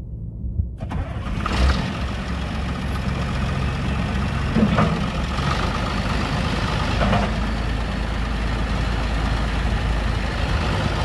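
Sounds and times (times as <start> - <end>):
tractor diesel engine idling: 0.8 - 11.0.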